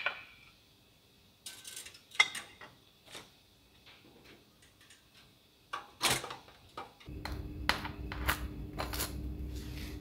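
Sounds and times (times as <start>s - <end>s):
steady low hum: 7.1s - 10.0s
knife scraping toasted bagel: 8.1s - 10.0s.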